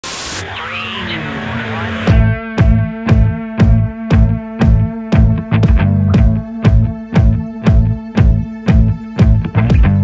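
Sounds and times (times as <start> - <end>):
white-noise static burst: 0.0 - 2.1
glitchy warbling electronic tones: 0.1 - 2.2.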